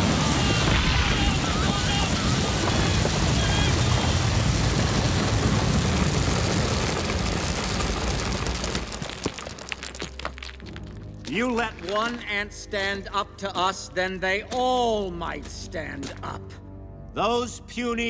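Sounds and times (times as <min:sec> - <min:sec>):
grain seeds pouring: 0:05.0 - 0:10.9.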